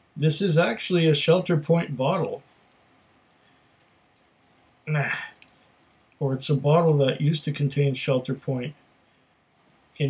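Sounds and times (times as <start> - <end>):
person speaking: 0.2 - 2.5, 4.8 - 5.6
small bottle ticks and crinkles: 2.4 - 6.1.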